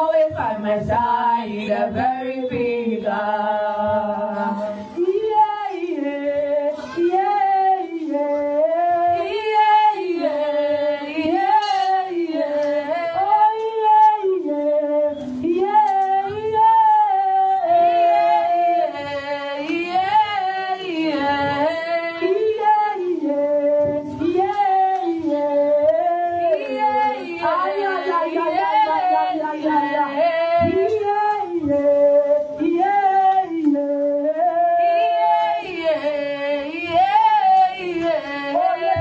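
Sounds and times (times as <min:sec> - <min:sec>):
woman singing into a microphone: 0:00.0 - 0:39.0.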